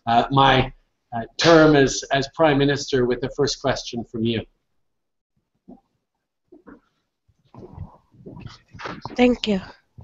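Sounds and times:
girl speaking into microphone: 0:08.4 - 0:09.9.

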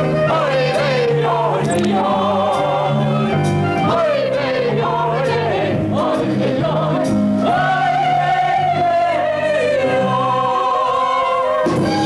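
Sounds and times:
instrumental accompaniment: 0:00.0 - 0:12.0
voices singing with vibrato: 0:00.0 - 0:12.0.

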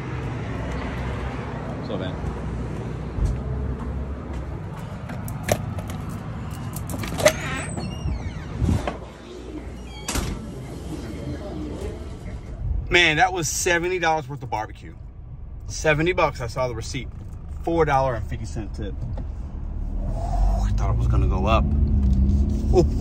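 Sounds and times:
traffic rumble: 0:00.0 - 0:23.0
car door opening and shutting: 0:05.0 - 0:10.6.

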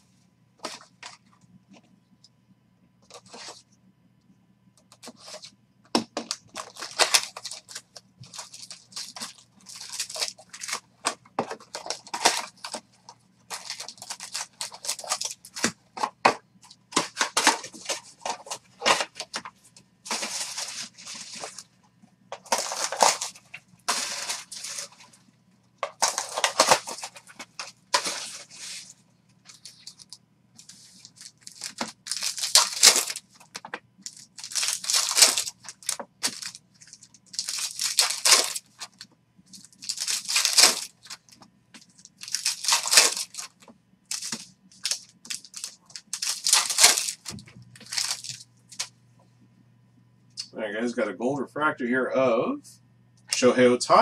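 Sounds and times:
card wrappers tearing and crinkling: 0:06.2 - 0:19.5, 0:20.1 - 0:21.7, 0:22.3 - 0:25.2, 0:25.8 - 0:48.9.

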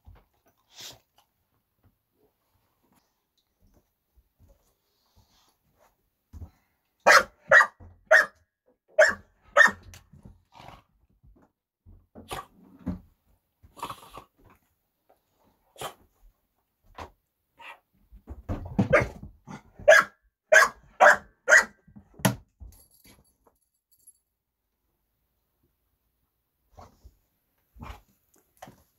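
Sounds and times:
dogs barking: 0:07.0 - 0:08.4, 0:09.0 - 0:09.8, 0:19.8 - 0:21.8.

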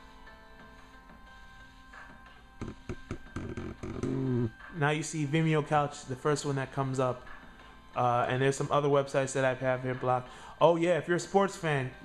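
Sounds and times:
faint music with held tones: 0:00.0 - 0:12.0.

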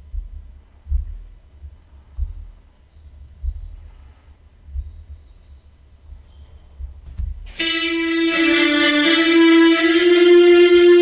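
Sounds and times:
deep low thumps: 0:00.0 - 0:03.8
closing music: 0:07.5 - 0:11.0.

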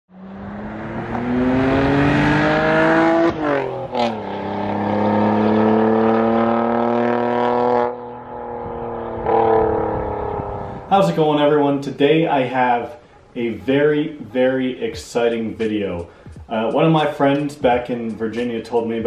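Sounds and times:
car engine accelerating: 0:00.1 - 0:11.6.

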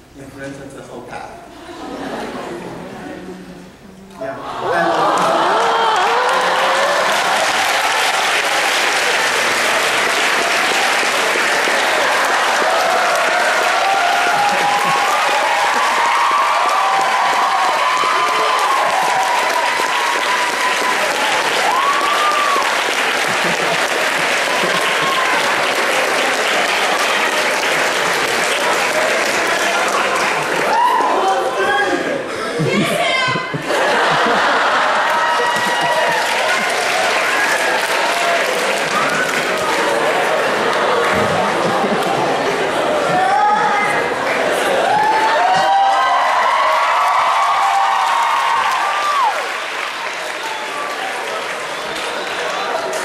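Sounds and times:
audience clapping and cheering: 0:04.3 - 0:53.0.

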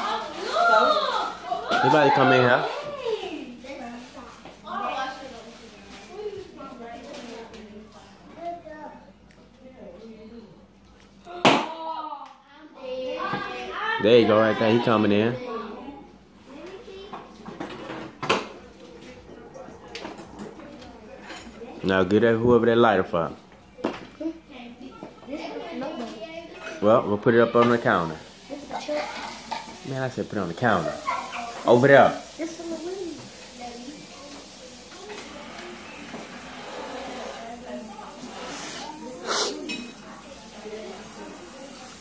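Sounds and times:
faint indistinct voices: 0:00.0 - 0:42.0.

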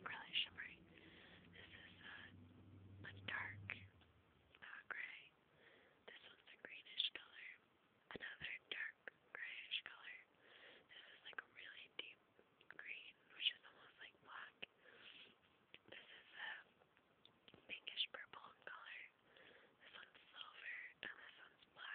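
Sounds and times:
person whispering: 0:00.0 - 0:02.4, 0:03.0 - 0:04.0, 0:04.6 - 0:05.4, 0:06.1 - 0:10.3, 0:10.9 - 0:16.7, 0:17.5 - 0:19.2, 0:19.8 - 0:21.9.

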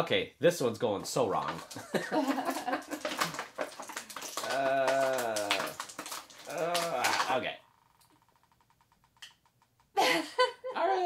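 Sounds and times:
plastic packaging crinkling: 0:01.3 - 0:07.4
person making wordless voice sounds: 0:04.4 - 0:05.8, 0:06.4 - 0:07.5.

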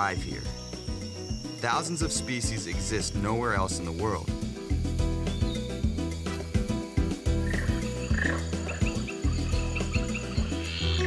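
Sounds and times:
soft background music: 0:00.0 - 0:11.0
frog chirping: 0:05.3 - 0:11.0.

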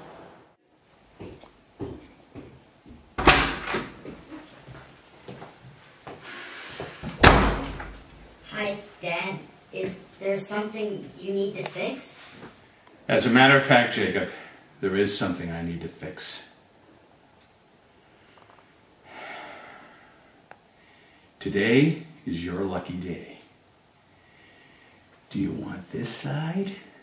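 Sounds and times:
door slamming shut: 0:03.2 - 0:04.0, 0:07.1 - 0:08.0
soft rustle of movement: 0:04.0 - 0:07.2
person breathing out heavily: 0:19.0 - 0:21.3.

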